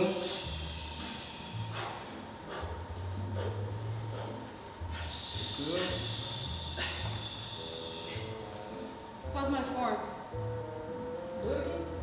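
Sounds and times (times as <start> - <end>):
forceful exhaled breaths: 0.2 - 8.4.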